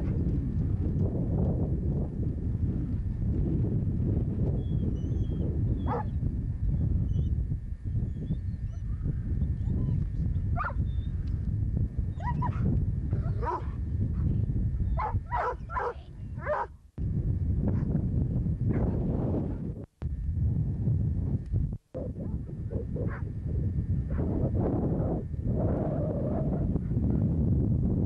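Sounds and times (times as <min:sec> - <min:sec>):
wind rumble on microphone: 0:00.0 - 0:28.0.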